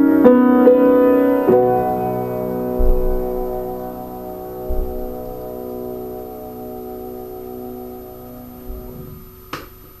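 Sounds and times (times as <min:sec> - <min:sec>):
piano chord ringing: 0:00.0 - 0:10.0
soft low thump: 0:02.6 - 0:06.0.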